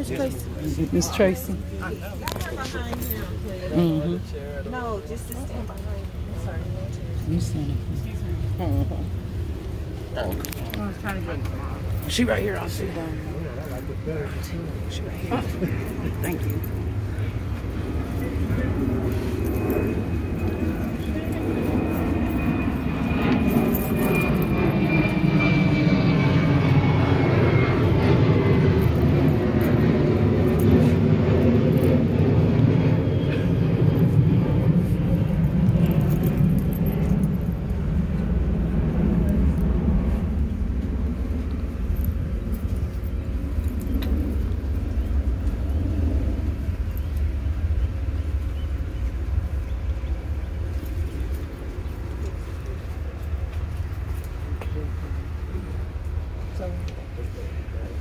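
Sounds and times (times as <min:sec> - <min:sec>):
aircraft engine drone: 0:00.0 - 0:58.0
faint high whine: 0:00.0 - 0:58.0.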